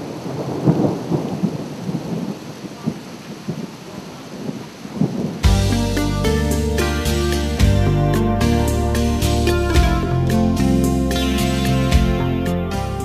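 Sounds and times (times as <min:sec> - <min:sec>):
weather forecast jingle: 0:05.4 - 0:13.0.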